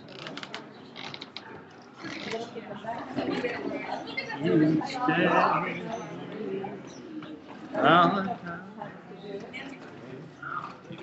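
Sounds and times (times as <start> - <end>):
murmur of crowded room: 0.0 - 11.0.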